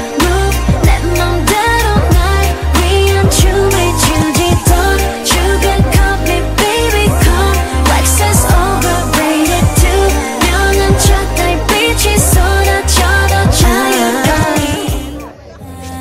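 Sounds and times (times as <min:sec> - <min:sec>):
heavy bass line: 0:00.0 - 0:15.2
pop song with sung vocals: 0:00.0 - 0:16.0.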